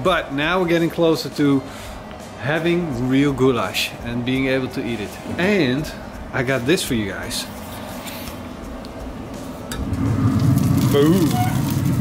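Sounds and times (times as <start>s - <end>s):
noise from cooking chamber: 0.0s - 12.0s.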